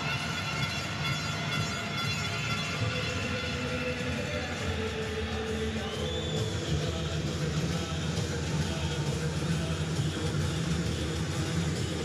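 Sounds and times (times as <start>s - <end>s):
crowd din: 0.0s - 12.0s
entrance music over pa: 0.0s - 12.0s.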